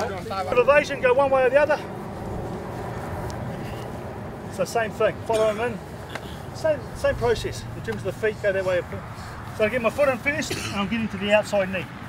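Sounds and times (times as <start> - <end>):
low outdoor rumble: 0.0 - 11.9.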